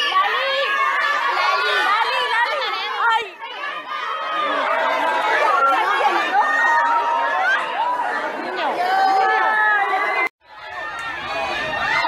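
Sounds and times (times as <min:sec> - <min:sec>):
crowd hubbub of voices: 0:00.0 - 0:12.0.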